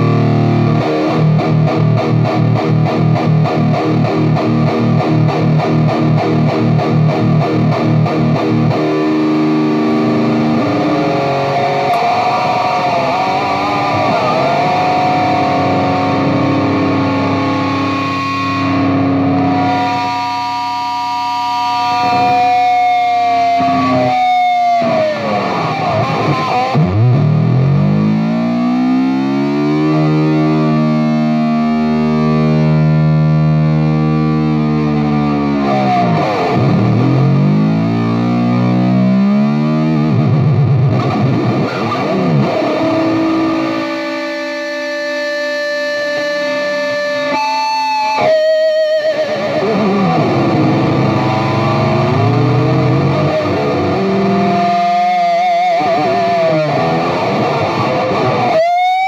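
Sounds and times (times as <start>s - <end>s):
distorted electric guitar: 0.0s - 59.0s.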